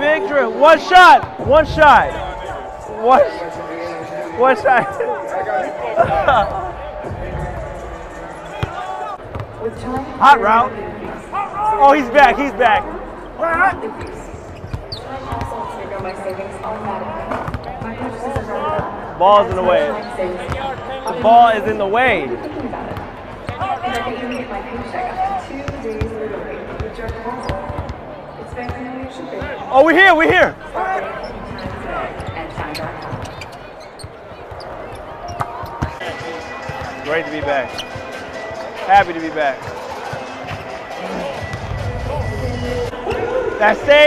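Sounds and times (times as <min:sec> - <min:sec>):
crowd chatter: 0:00.0 - 0:44.0
murmur of voices: 0:00.0 - 0:44.0
basketballs bouncing on hardwood: 0:08.6 - 0:10.2.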